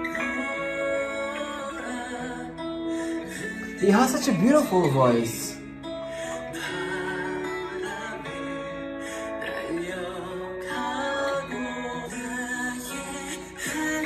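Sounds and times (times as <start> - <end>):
man singing folk song: 0.0 - 5.6, 6.2 - 14.0
acoustic guitar: 0.0 - 14.0.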